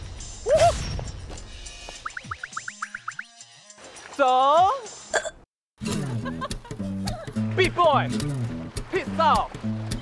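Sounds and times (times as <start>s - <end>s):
bouncy background music: 1.4s - 10.0s.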